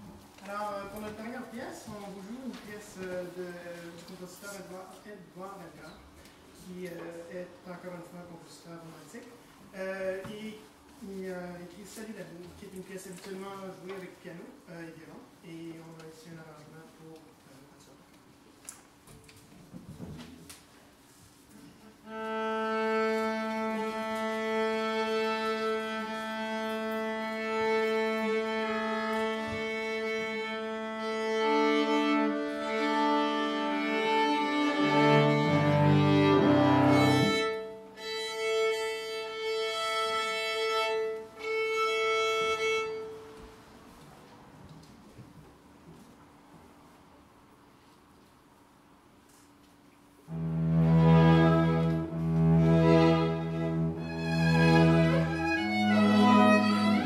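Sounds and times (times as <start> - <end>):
string quartet tuning: 21.9 - 43.8, 50.3 - 57.0
cello low strings: 22.0 - 43.4, 50.3 - 57.0.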